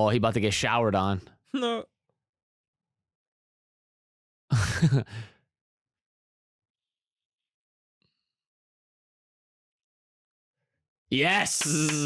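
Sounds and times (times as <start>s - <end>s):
man's wordless vocal reaction: 11.1s - 12.0s.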